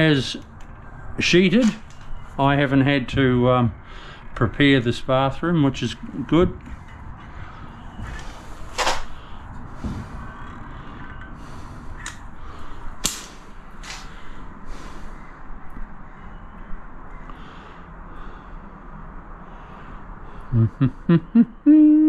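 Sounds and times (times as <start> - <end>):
low background noise: 0.0 - 22.0
caulking gun clicks and creaks: 0.3 - 2.2, 8.7 - 9.2, 12.0 - 12.2, 13.8 - 14.1.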